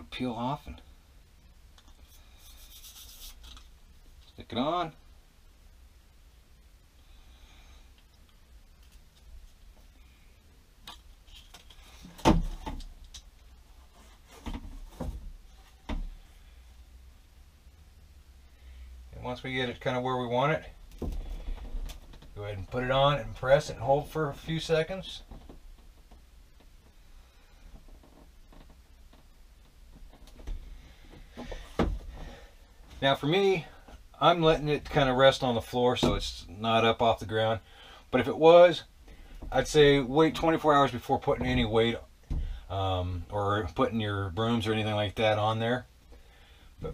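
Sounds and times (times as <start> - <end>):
faint handling noises: 7.9 - 16.4.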